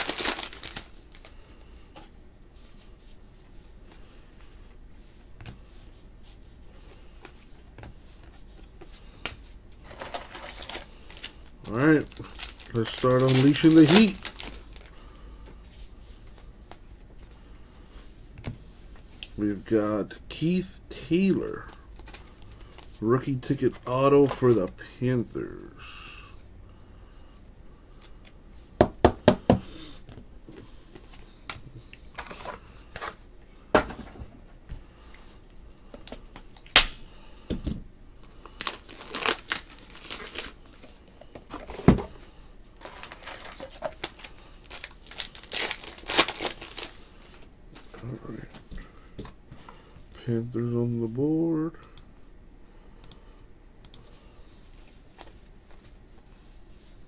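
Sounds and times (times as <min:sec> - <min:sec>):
card packs being torn open: 0:00.0 - 0:01.4, 0:10.0 - 0:14.9, 0:38.5 - 0:40.6, 0:42.8 - 0:47.2.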